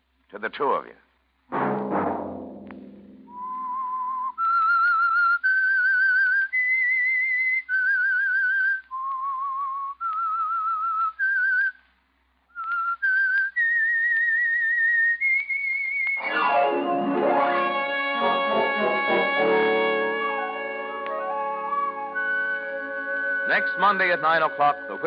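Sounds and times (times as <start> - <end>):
person whistling a melody: 3.3 - 11.8, 12.5 - 16.2, 18.7 - 25.0.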